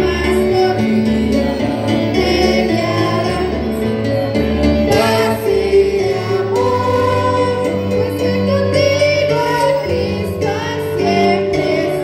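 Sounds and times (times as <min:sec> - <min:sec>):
several voices singing gospel: 0:00.0 - 0:12.0.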